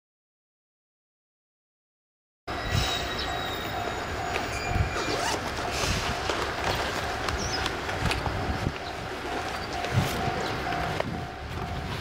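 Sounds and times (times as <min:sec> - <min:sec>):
diesel locomotive engine rumble: 0:02.5 - 0:12.0
train wheel and rail noise: 0:02.5 - 0:12.0.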